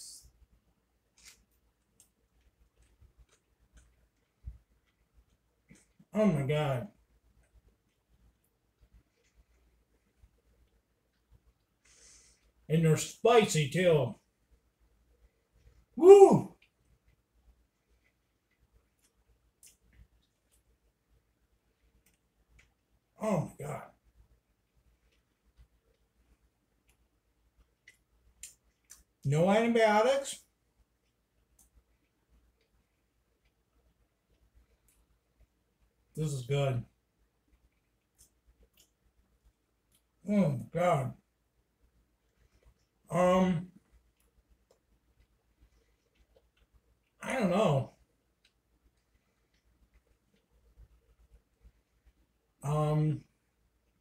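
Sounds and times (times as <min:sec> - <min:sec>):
faint chewing mouth clicks: 0:01.1 - 0:06.1, 0:16.6 - 0:21.0, 0:21.6 - 0:23.1, 0:24.1 - 0:29.2, 0:30.8 - 0:36.1, 0:37.2 - 0:40.2, 0:42.2 - 0:43.0, 0:43.7 - 0:47.2, 0:48.0 - 0:52.5.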